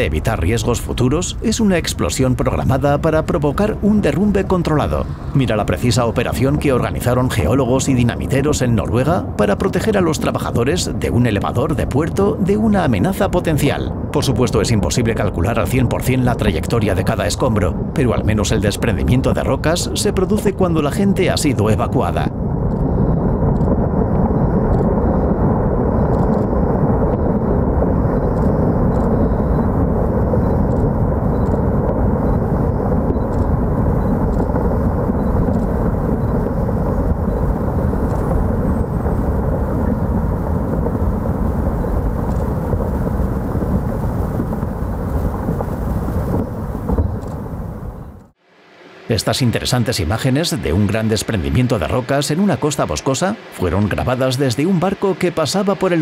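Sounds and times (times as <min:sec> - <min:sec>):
rockfall rumbling: 0:00.0 - 0:48.1, 0:49.1 - 0:56.0.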